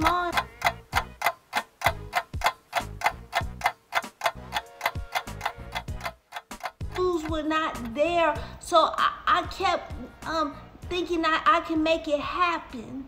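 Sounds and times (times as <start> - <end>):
clock-like ticking: 0.0 - 8.0.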